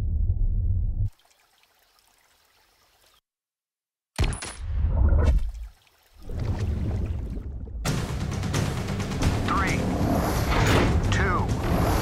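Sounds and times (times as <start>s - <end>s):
water rushing and splashing: 1.1s - 3.2s, 5.2s - 8.0s.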